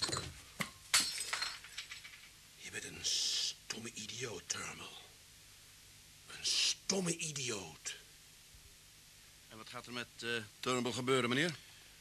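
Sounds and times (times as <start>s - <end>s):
man whispering: 2.6s - 5.1s, 6.3s - 8.0s.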